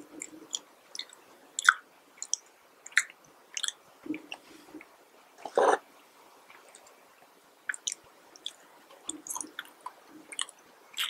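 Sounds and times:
wet mouth clicks: 0:00.2 - 0:04.4, 0:07.7 - 0:11.0.

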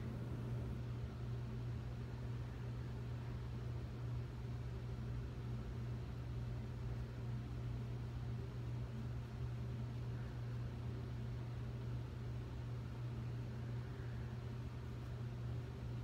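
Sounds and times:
low hum: 0:00.0 - 0:07.7.

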